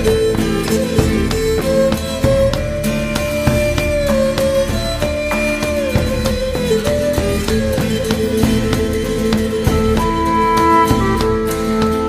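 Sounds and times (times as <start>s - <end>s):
plucked strings: 0.0s - 12.0s
sliding melody line: 0.0s - 12.0s.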